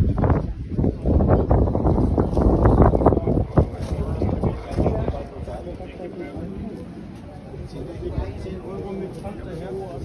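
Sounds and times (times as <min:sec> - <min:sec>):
wind buffeting microphone: 0:00.0 - 0:06.0.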